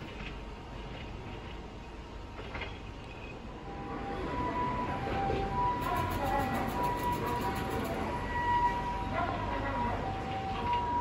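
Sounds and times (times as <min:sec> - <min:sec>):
train sounds: 0:00.0 - 0:11.0.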